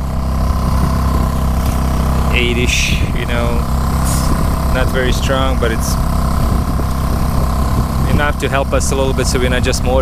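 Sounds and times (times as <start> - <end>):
outboard motor running: 0.0 - 10.0.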